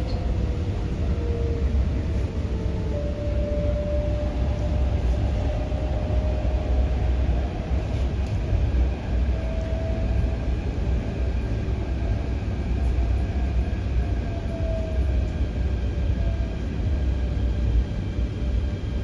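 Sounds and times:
train wheels rumbling on track: 0.0 - 19.0.

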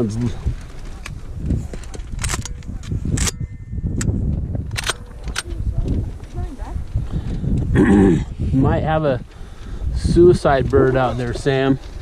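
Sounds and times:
wind rumbling on microphone: 0.0 - 12.0
sharp clicks or knocks: 1.0 - 3.4, 4.0 - 6.0.

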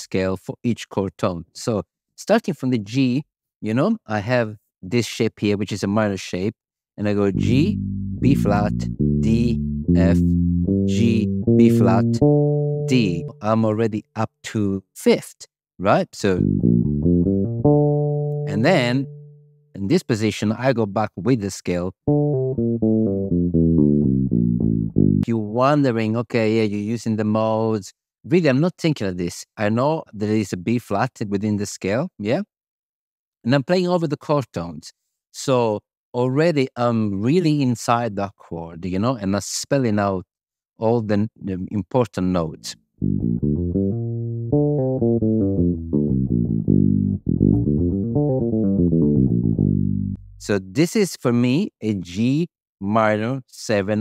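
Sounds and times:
electric bass guitar scale: 7.2 - 13.9, 16.3 - 19.4, 21.9 - 25.3, 42.4 - 50.6.

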